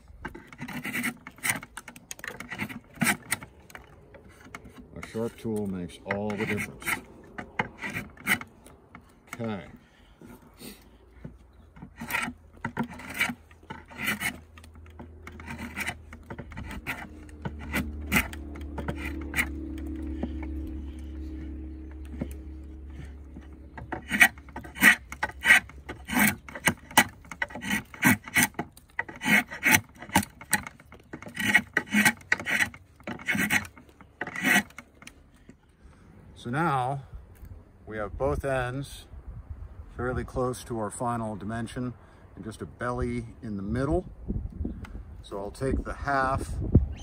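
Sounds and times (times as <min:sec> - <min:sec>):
draw knife shaving wood: 0:00.1 - 0:09.5, 0:10.3 - 0:35.2.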